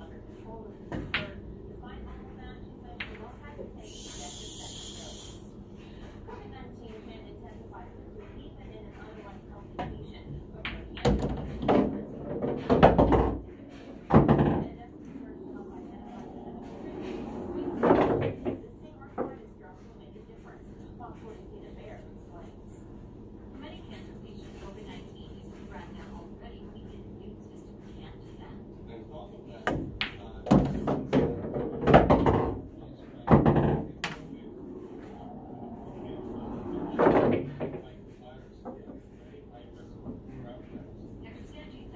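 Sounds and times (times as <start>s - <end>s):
pool balls knocking together: 10.7s - 15.2s, 29.7s - 37.8s.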